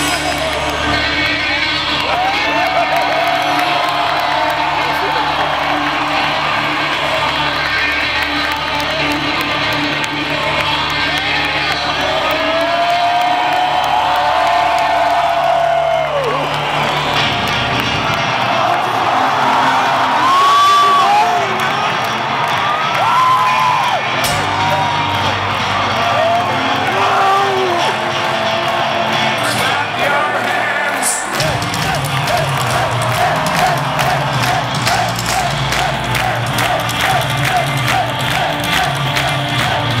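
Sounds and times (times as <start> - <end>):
low electric guitar and bass tones: 0.0 - 14.7, 21.4 - 30.0
large crowd cheering: 0.0 - 40.0.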